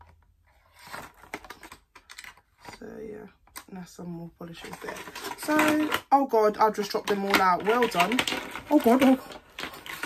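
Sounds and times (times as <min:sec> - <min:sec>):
packaging clicks and rustles: 0:00.0 - 0:02.8, 0:04.5 - 0:10.0.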